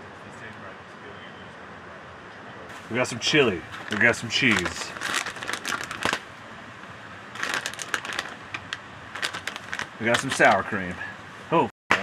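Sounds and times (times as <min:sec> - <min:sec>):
plastic pouch crinkling: 0:03.7 - 0:06.2, 0:07.3 - 0:10.6.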